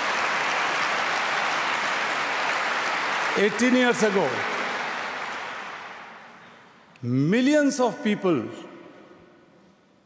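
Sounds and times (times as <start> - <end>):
large audience applause: 0.0 - 6.4.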